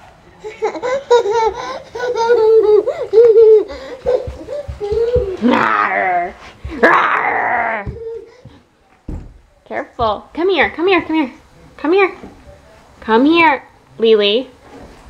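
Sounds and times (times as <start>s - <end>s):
toddler laughing and squealing: 0.5s - 8.5s.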